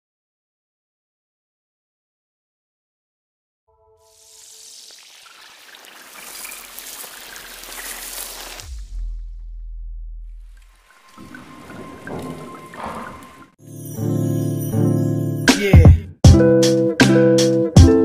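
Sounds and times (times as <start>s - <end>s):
hissing noise swell: 4.0s - 8.7s
hiss with glittery ticks: 4.1s - 8.6s
deep bass hit: 8.6s - 12.8s.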